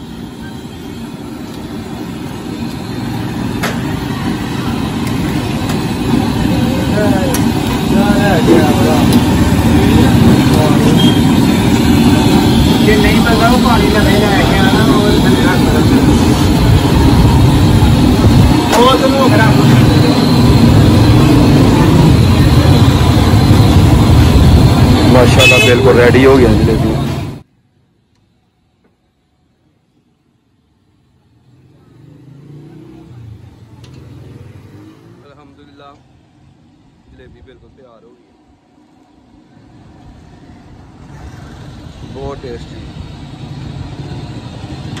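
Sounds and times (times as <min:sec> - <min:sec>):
low rumble of street traffic: 0:00.0 - 0:45.0.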